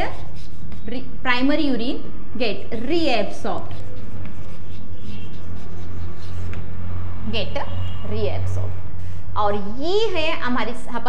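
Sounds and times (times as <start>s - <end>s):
chalk scratching on blackboard: 0.0s - 1.1s, 2.5s - 6.7s
steady low hum: 0.0s - 10.8s.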